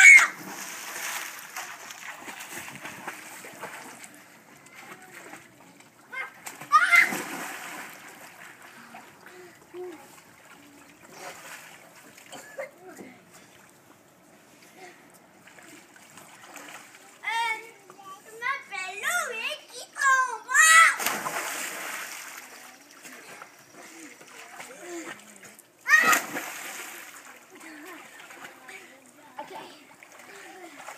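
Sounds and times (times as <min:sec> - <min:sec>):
child shouting: 0:00.0 - 0:00.4, 0:06.1 - 0:07.3, 0:18.6 - 0:21.0, 0:25.9 - 0:26.2
child shrieking: 0:00.0 - 0:00.4, 0:06.7 - 0:07.2, 0:25.9 - 0:26.2
water settling: 0:00.0 - 0:18.0, 0:20.7 - 0:30.9
loud splash into pool: 0:06.4 - 0:08.3, 0:20.8 - 0:22.5, 0:25.9 - 0:27.2
children's voices: 0:16.7 - 0:21.1.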